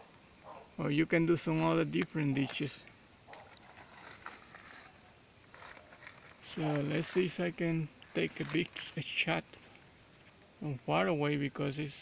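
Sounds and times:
small soft noises: 0.0s - 12.0s
faint hiss: 4.4s - 12.0s.

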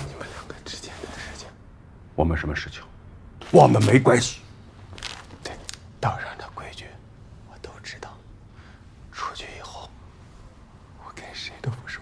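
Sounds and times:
man whispering breathily: 0.0s - 1.6s, 5.4s - 10.0s, 10.9s - 12.0s.

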